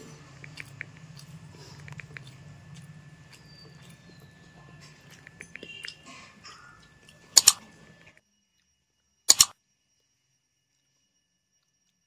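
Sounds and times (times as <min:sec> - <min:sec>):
mouse double click: 0:07.4 - 0:07.6, 0:09.3 - 0:09.5.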